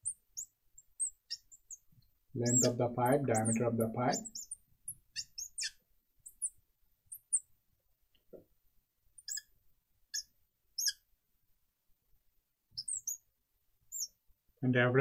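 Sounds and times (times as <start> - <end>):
marker squeaking on glass: 0.0 - 7.5, 9.2 - 11.1, 12.8 - 13.3, 13.9 - 14.2.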